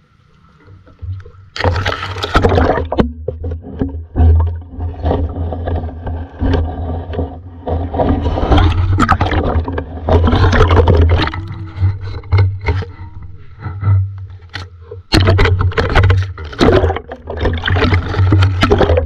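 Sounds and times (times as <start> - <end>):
low underwater rumble: 0.0 - 19.0.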